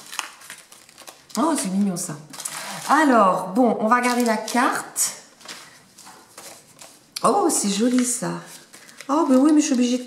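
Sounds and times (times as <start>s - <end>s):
paper envelope rustling: 0.0s - 10.0s.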